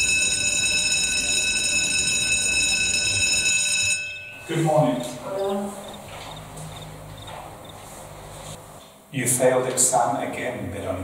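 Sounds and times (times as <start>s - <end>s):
electric school bell ringing: 0.0s - 7.7s.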